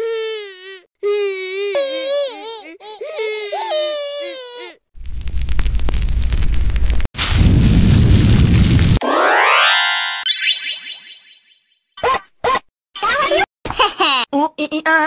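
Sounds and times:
rising magical sweep effect: 0:09.0 - 0:11.8.

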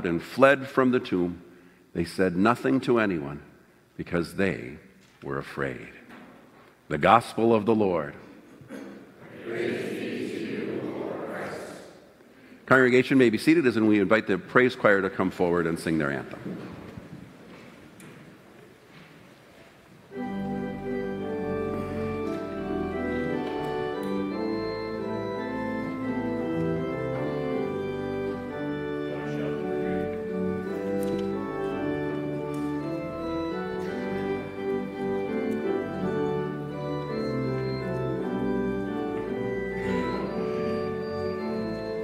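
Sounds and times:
church organ chords: 0:00.0 - 0:05.6, 0:20.1 - 0:42.0.

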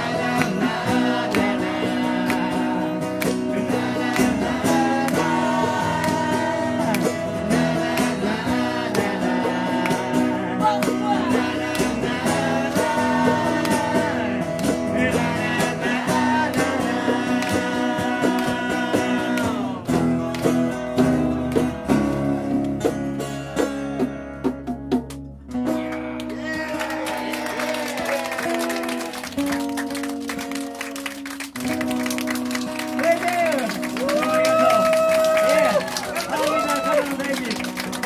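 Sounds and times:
lead vocal singing: 0:00.0 - 0:22.3
acoustic rock band playing: 0:00.0 - 0:38.0.

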